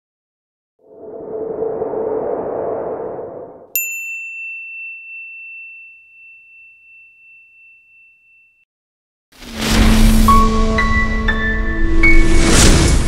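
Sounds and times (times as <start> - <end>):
rushing swell: 0.8 - 3.8.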